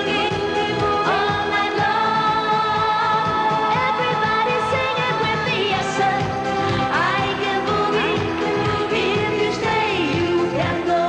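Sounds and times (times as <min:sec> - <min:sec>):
disco-pop backing track: 0:00.0 - 0:11.0
woman singing pop vocals: 0:00.0 - 0:11.0.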